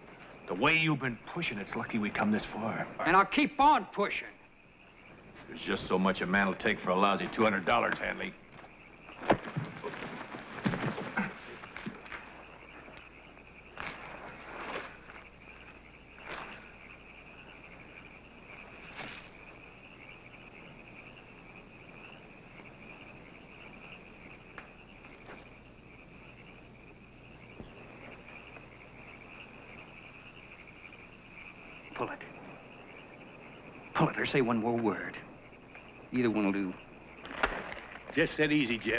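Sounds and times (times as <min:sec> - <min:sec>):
person moving in dirt and brush: 0:07.1 - 0:17.1, 0:18.5 - 0:19.6, 0:37.0 - 0:38.9.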